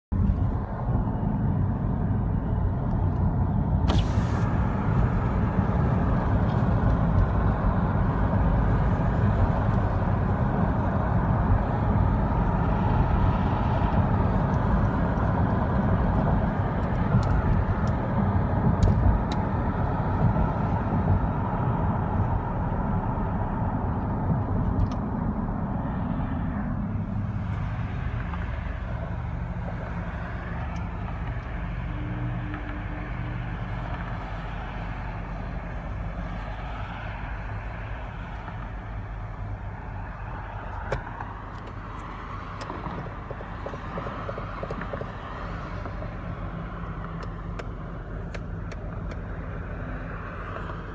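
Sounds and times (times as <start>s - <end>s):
loud vehicle rumble: 0.0s - 50.9s
background traffic noise: 0.1s - 50.9s.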